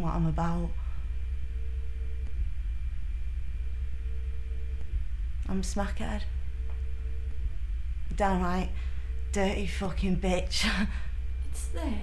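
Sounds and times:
faint thin hum: 0.0s - 12.0s
low background rumble: 0.0s - 12.0s.

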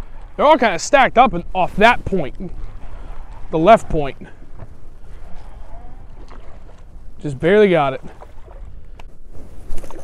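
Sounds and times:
waves lapping against boat hull: 0.0s - 10.0s
wind rumbling on microphone: 0.0s - 10.0s.

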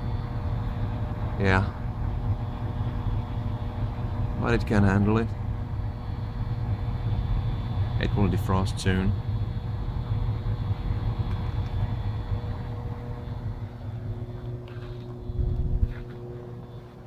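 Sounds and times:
heat pump fan and compressor hum: 0.0s - 17.0s
low tone: 0.0s - 17.0s.

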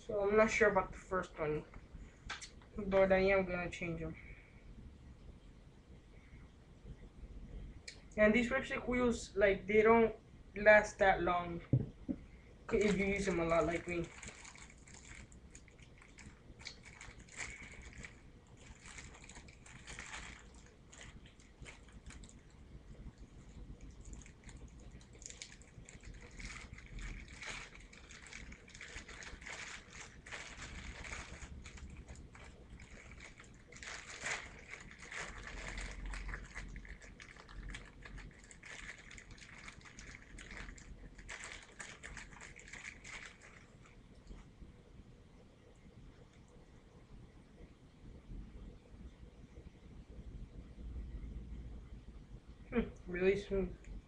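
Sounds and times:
plastic packaging crinkling: 12.7s - 44.4s.

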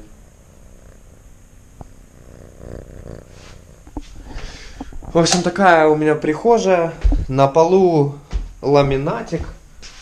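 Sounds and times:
pet purring: 0.0s - 5.9s.

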